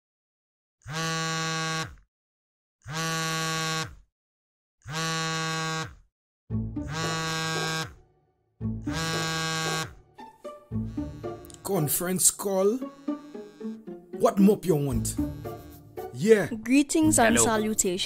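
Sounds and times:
mobile phone ringing: 6.8 - 8.0, 8.8 - 14.0, 14.6 - 15.9.

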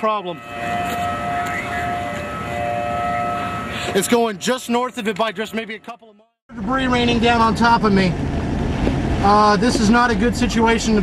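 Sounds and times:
warning siren steady pitch: 0.0 - 5.0.

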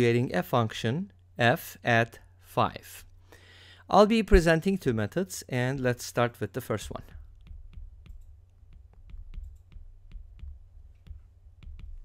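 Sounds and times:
stylus tapping on glass screen: 7.1 - 12.0.

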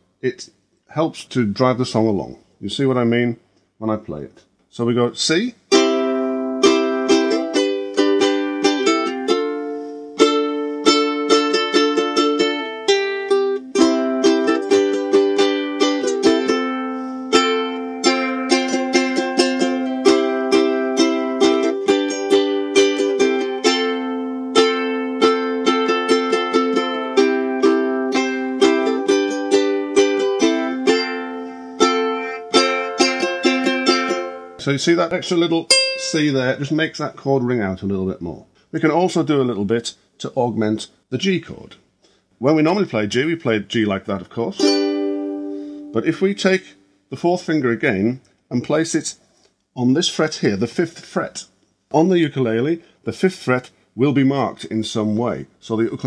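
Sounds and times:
ukulele strumming chords: 5.7 - 36.7, 44.4 - 46.3.

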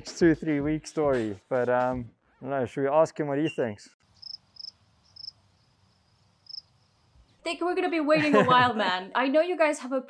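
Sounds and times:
cricket chirps: 4.0 - 7.4.

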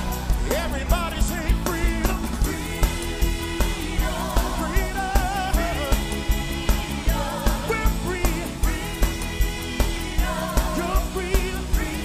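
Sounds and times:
gospel group singing: 0.0 - 12.0
steady drum beat: 0.0 - 12.0.

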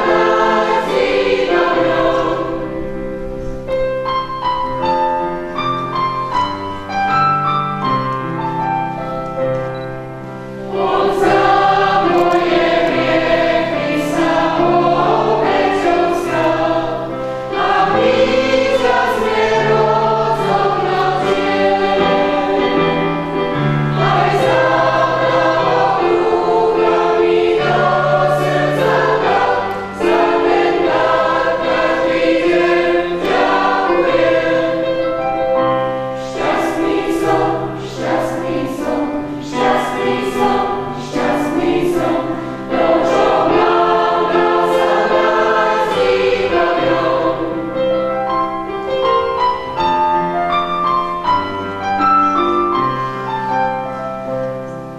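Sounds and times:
choir singing a sacred song: 0.0 - 3.8, 10.5 - 48.1.

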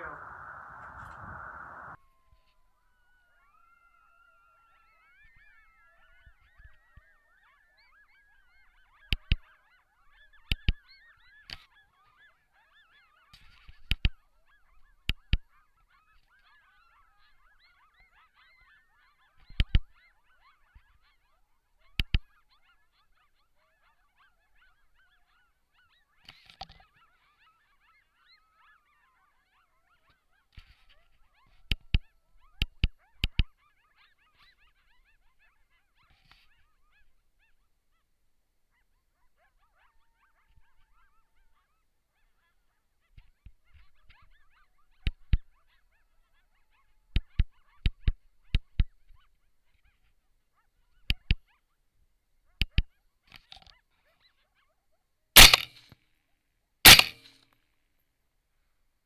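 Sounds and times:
coyotes howling and yipping: 0.0 - 38.0, 38.8 - 47.9
sharp loud cracks: 55.4 - 55.9, 56.9 - 57.4.

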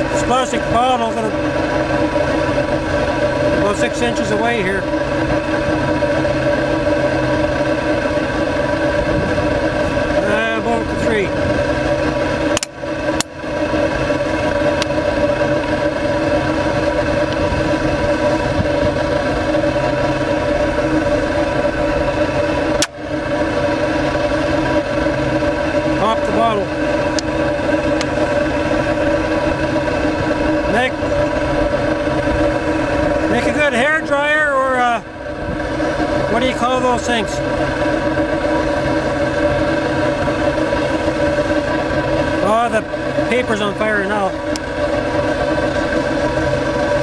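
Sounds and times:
loud droning hum of flame rig: 0.0 - 47.0.

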